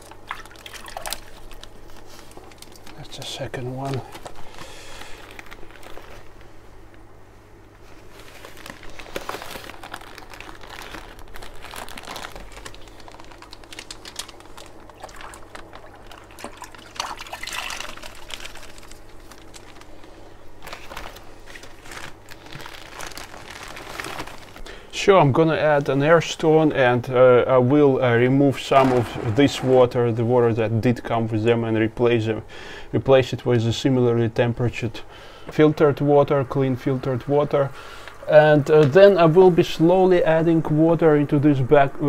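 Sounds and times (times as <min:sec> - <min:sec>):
water pouring and sloshing: 0:00.0 - 0:02.9, 0:14.8 - 0:19.6
plastic bag crinkling: 0:00.0 - 0:06.6, 0:08.0 - 0:25.0.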